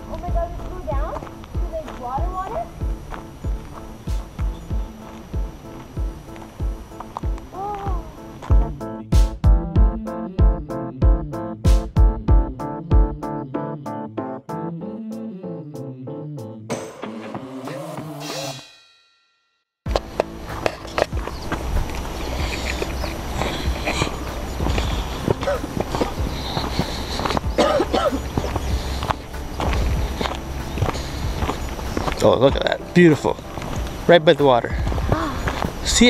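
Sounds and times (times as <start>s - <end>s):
wind buffeting microphone: 0.0s - 8.5s, 19.9s - 36.0s
footsteps on dirt trail: 0.0s - 9.3s, 19.9s - 36.0s
keyboard background music: 0.0s - 18.6s, 19.9s - 36.0s.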